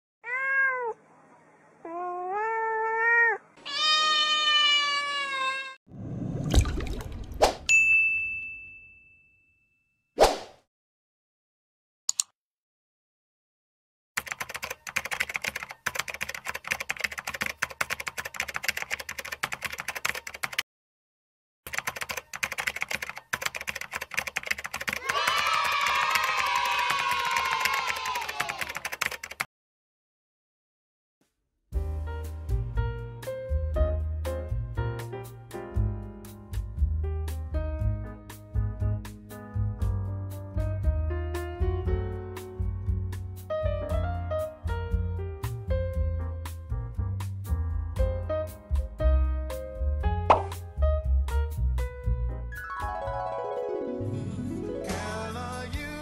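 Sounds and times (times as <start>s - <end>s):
cat meowing: 0.2s - 1.0s, 1.8s - 5.8s
bell-like ding: 7.7s - 10.0s.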